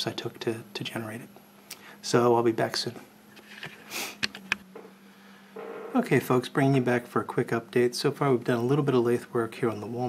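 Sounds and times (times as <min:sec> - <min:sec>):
steady mains hum: 0:00.0 - 0:10.0
man speaking: 0:06.0 - 0:10.0.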